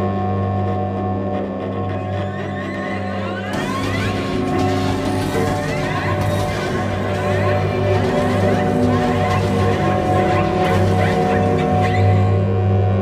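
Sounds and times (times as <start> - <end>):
cello drone: 0.0 - 13.0
layered electronic tones: 3.3 - 12.6.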